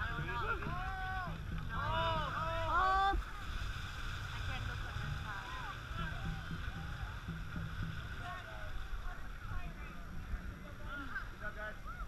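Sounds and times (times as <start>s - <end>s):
faint indistinct voices: 0.0s - 12.0s
wind and water rumble: 0.0s - 12.0s.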